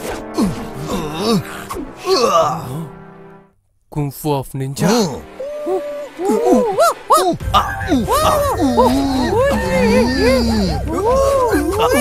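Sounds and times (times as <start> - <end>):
man making hooting cries: 4.8 - 12.0
man laughing: 6.2 - 12.0.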